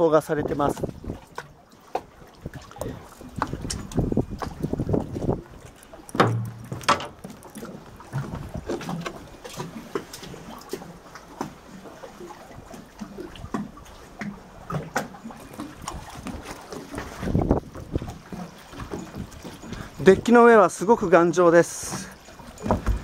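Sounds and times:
wind on microphone: 0:00.3 - 0:01.3, 0:02.4 - 0:06.9, 0:08.0 - 0:08.9, 0:15.8 - 0:18.4
knocks and clicks on boat: 0:00.4 - 0:23.0
heavy thump: 0:06.2 - 0:07.1.

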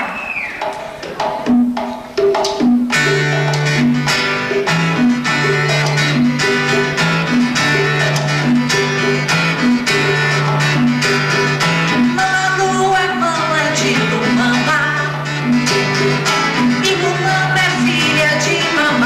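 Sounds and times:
hand drum strokes: 0:00.0 - 0:12.4
strummed guitar: 0:00.8 - 0:19.0.

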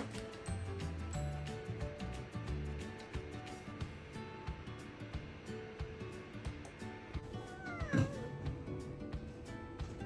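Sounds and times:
background music: 0:00.0 - 0:10.0
cat meowing: 0:07.3 - 0:08.5.

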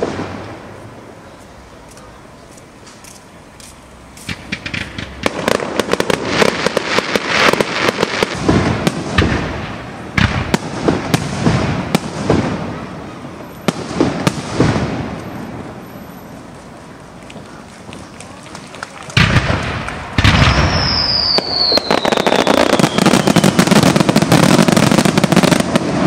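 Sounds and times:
fireworks bangs and crackles: 0:00.0 - 0:26.0.

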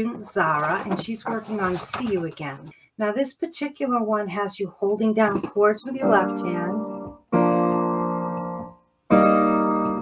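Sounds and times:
piano chord: 0:06.1 - 0:10.0.

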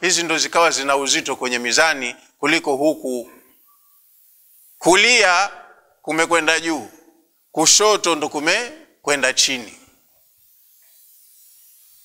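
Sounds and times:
faint microphone hiss: 0:00.0 - 0:12.0.

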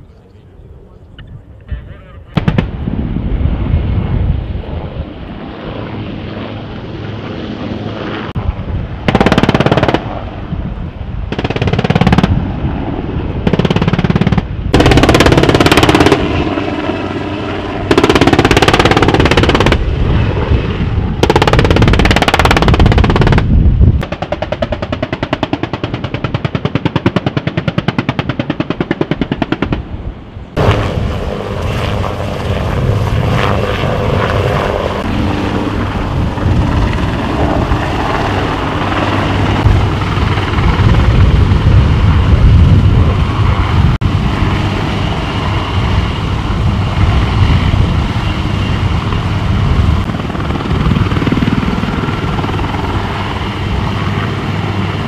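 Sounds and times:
helicopter rotor noise: 0:00.0 - 0:55.0
automatic gunfire bursts: 0:09.1 - 0:10.0, 0:13.5 - 0:16.3, 0:17.9 - 0:19.8.

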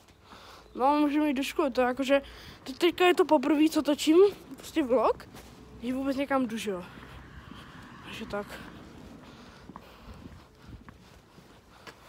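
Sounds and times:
footsteps on concrete: 0:01.8 - 0:12.0.

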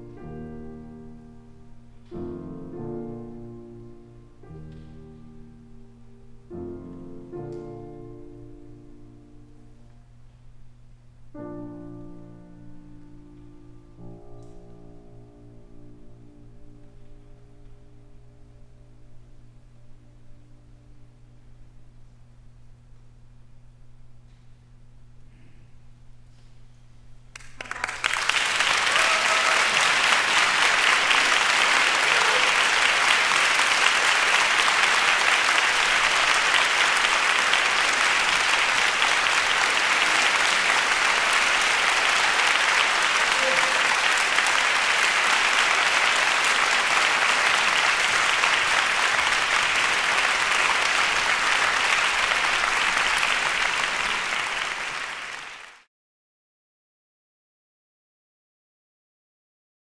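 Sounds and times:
audience applauding: 0:27.3 - 0:55.9.

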